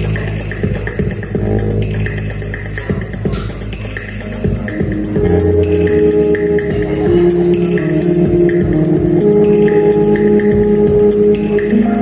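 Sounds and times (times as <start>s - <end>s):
electronic music: 0.0s - 12.0s.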